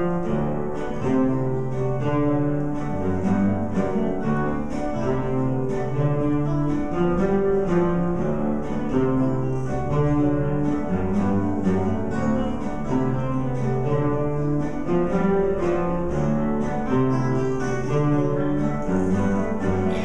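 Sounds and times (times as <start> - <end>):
classical guitars playing: 0.0 - 20.0.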